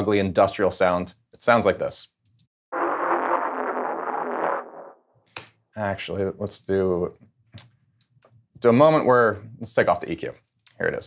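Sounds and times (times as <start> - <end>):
distorted industrial synth bass: 2.8 - 4.9.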